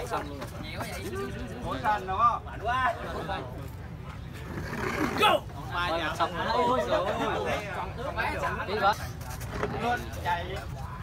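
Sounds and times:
spectators chatting: 0.0 - 11.0.

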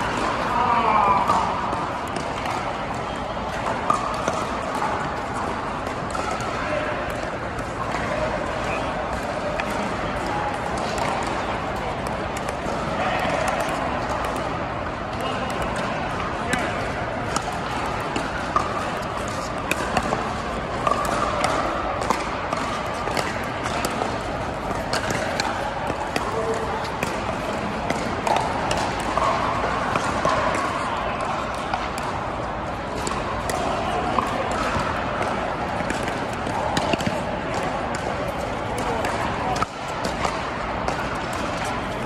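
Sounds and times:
murmur of many voices: 0.0 - 42.0.

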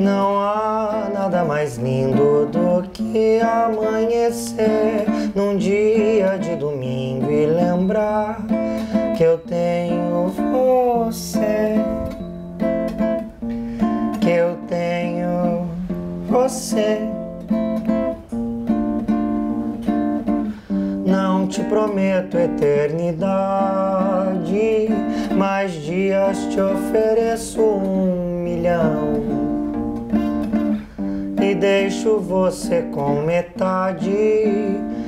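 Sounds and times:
man singing: 0.0 - 12.2, 13.8 - 18.2, 20.8 - 35.0
classical guitar strummed and plucked: 0.0 - 35.0.

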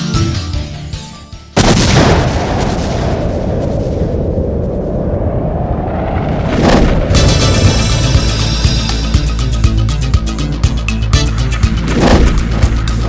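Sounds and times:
music: 0.0 - 1.6, 7.1 - 13.0
loud rumbling boom: 1.6 - 9.3
whoosh: 3.1 - 9.6, 11.6 - 13.0.

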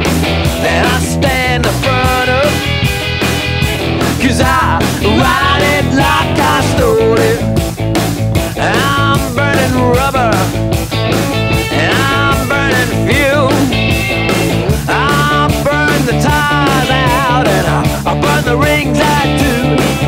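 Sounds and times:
bass and drums beat: 0.0 - 20.0.

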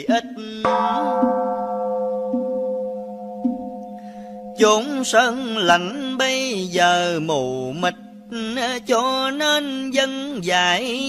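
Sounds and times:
bowl bell ringing: 0.7 - 6.1, 7.8 - 9.2
soft low notes: 0.7 - 11.0.

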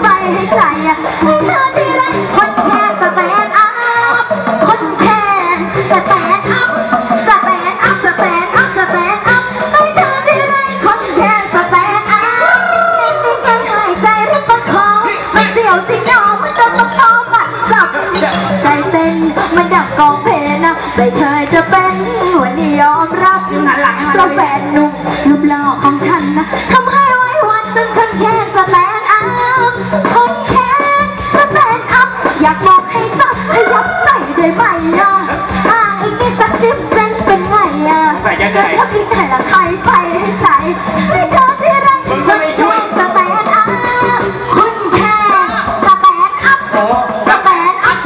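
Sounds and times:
band backing music: 0.0 - 48.0
person singing amplified: 7.4 - 29.0, 30.1 - 48.0
person singing through sound system: 11.0 - 31.8.

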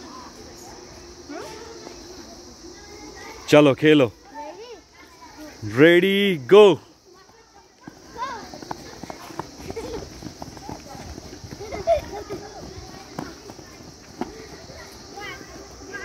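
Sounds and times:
children's footsteps on dry ground: 4.2 - 16.0
children shouting: 7.1 - 16.0.

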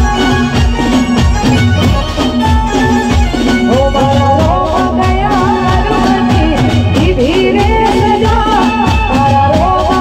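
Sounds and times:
dhol drum beat: 0.0 - 10.0
person singing: 3.6 - 10.0.

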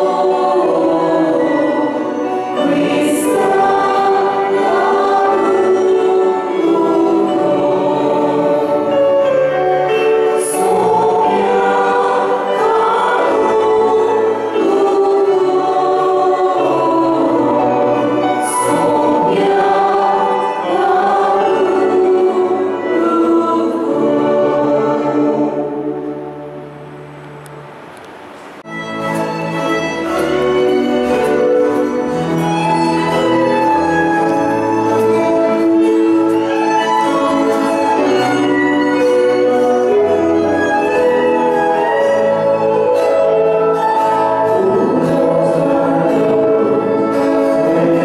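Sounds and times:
choir singing a slow hymn: 0.0 - 27.1, 30.1 - 48.0.

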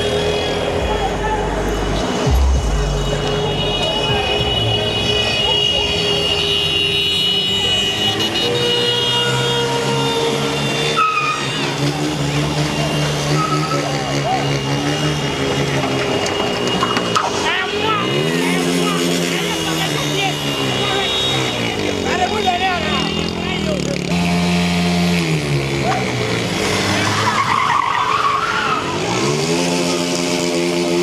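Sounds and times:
car engines running: 0.0 - 31.0
people shouting: 0.5 - 16.2.

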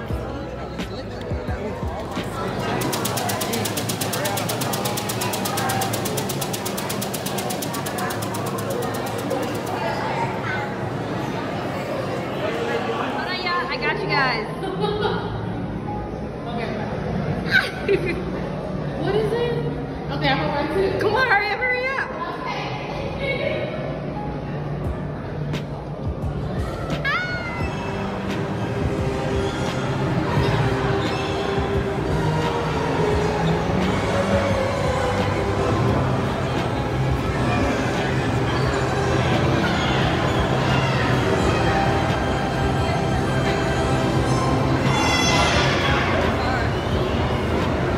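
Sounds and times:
background music: 0.0 - 11.8, 23.8 - 47.9.

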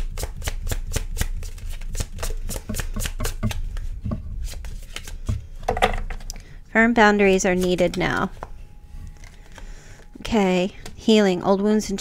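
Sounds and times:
cards being shuffled by hand: 0.0 - 6.3, 7.4 - 10.1.

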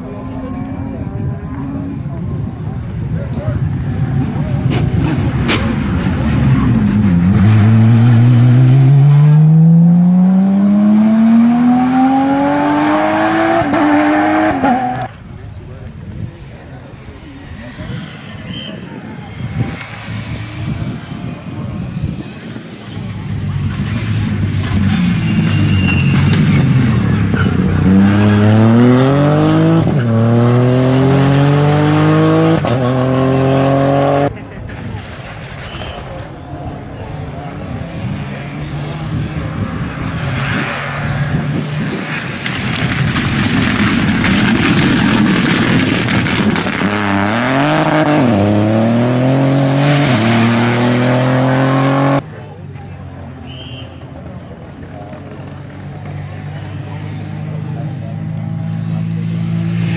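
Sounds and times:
rally car engine accelerating: 4.2 - 15.1, 23.6 - 34.3, 37.5 - 52.2.

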